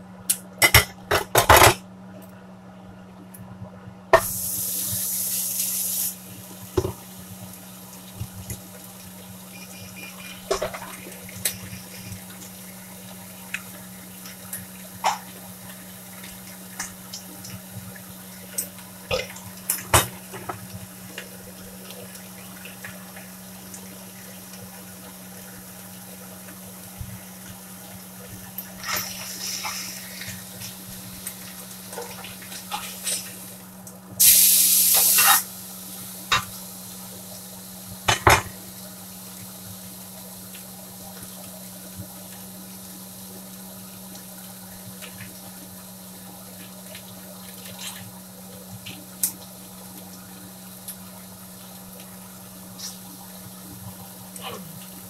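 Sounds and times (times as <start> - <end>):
loud hiss of turned meat: 4.2 - 6.3, 28.8 - 30.7, 34.2 - 36.8
meat sizzling in a skillet: 4.2 - 55.0.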